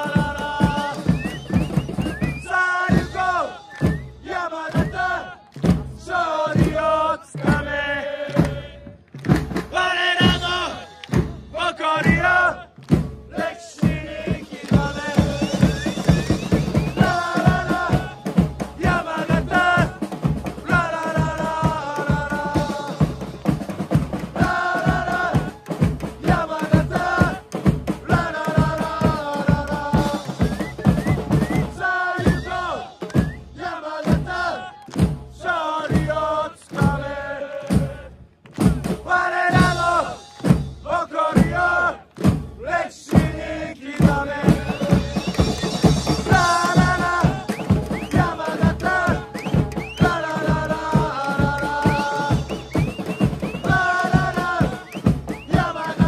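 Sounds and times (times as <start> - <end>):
football supporters chanting: 0.0 - 56.0
steady drumbeat: 0.0 - 56.0.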